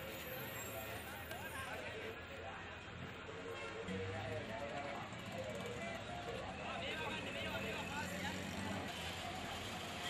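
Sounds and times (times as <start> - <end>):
vehicle traffic: 3.8 - 10.0.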